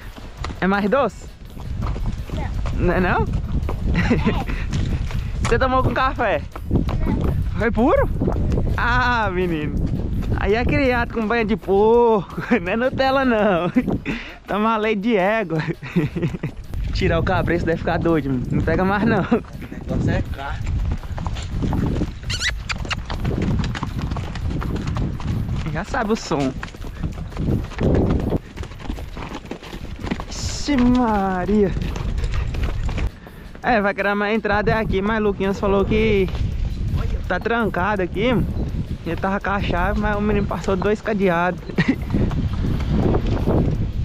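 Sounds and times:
horse hooves clip-clopping on dirt: 0.0s - 44.0s
wind buffeting microphone: 0.0s - 44.0s.

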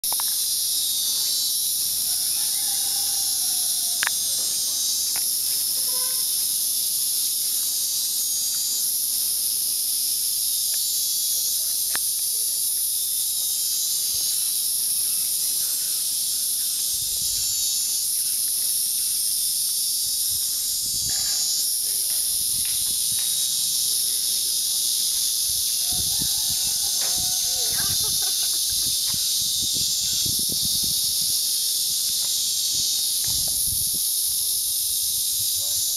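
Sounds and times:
cicadas buzzing: 0.0s - 35.9s.

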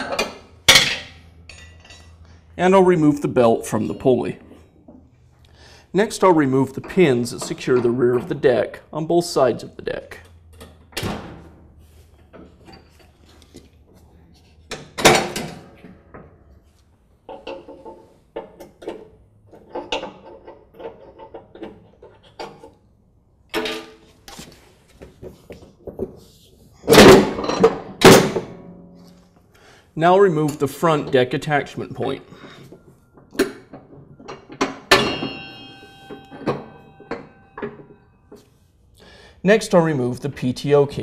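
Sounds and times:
metal clicks and knocks: 33.2s - 38.4s.

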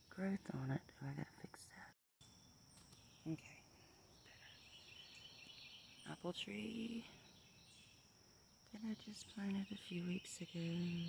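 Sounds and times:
insect chorus: 0.0s - 11.0s.

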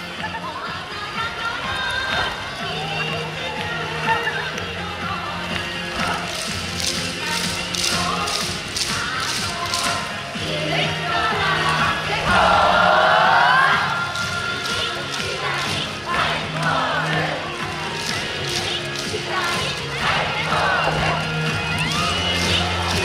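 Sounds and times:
dancers clacking and clapping: 0.0s - 23.0s
loud held vocal line: 0.0s - 23.0s
upbeat dance music: 0.0s - 23.0s.

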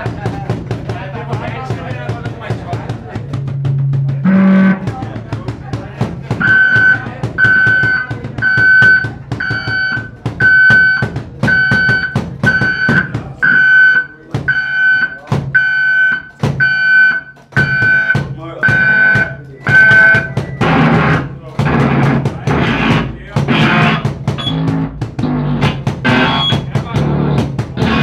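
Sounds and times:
drum kit playing: 0.0s - 28.0s
pulsing high electronic beeps: 6.4s - 20.9s, 23.7s - 24.7s, 26.1s - 26.6s.

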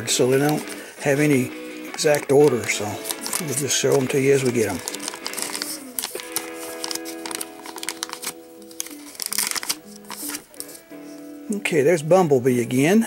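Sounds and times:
foil wrapper crinkling: 0.0s - 11.0s
background music with held notes: 0.0s - 13.0s.

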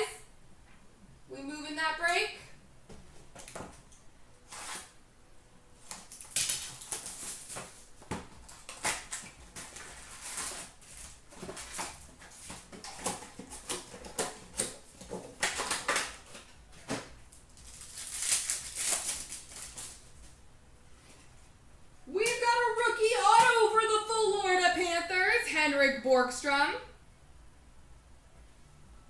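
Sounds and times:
card pack wrappers crinkling: 5.8s - 20.3s.

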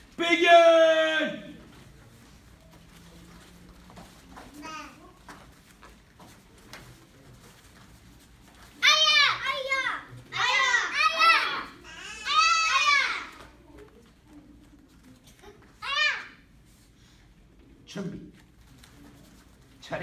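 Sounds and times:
children shouting: 8.8s - 13.6s.

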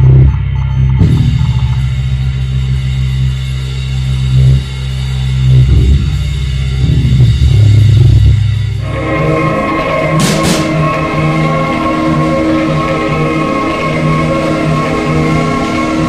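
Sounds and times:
heavy electric guitar and bass: 0.0s - 16.0s.

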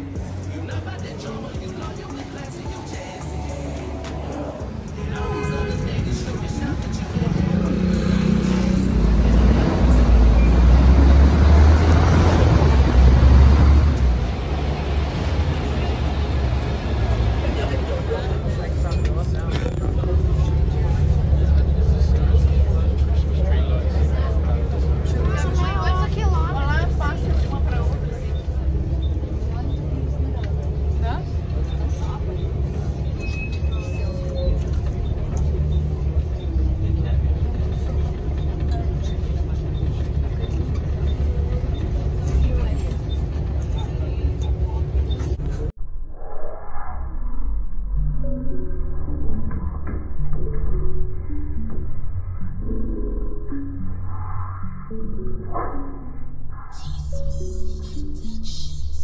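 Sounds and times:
bus engine rumble: 0.0s - 45.8s, 49.2s - 59.0s
indistinct voices: 0.0s - 45.8s, 48.0s - 59.0s.

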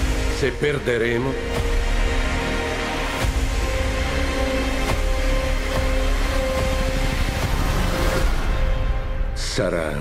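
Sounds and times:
orchestral music: 0.0s - 10.0s.

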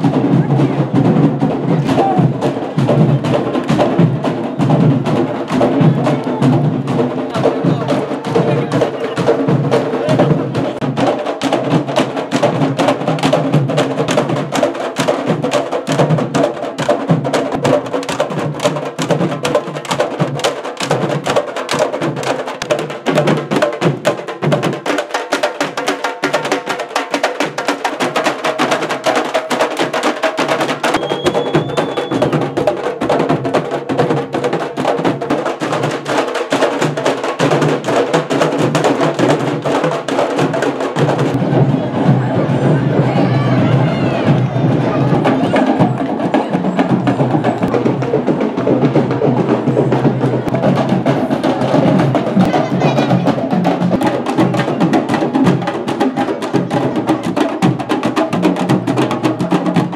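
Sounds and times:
drum ensemble playing fast rhythm: 0.0s - 59.9s.

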